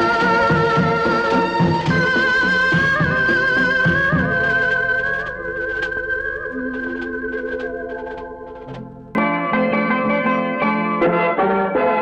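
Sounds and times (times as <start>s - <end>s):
busy instrumental music: 0.0s - 12.0s.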